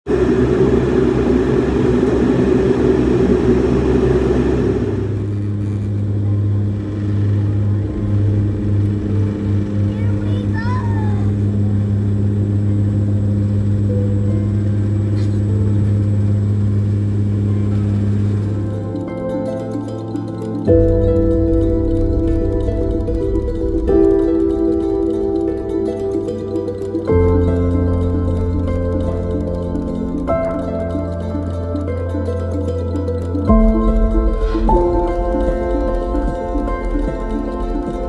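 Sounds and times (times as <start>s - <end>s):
aircraft engine rushing noise: 0.0s - 38.0s
low propeller drone: 0.0s - 38.0s.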